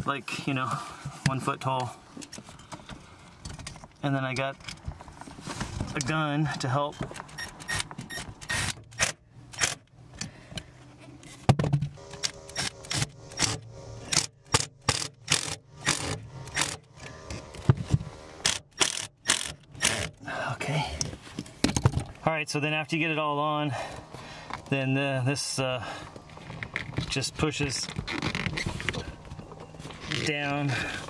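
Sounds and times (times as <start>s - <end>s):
sharp clicks of drill clutch: 12.2s - 16.8s, 18.4s - 20.1s.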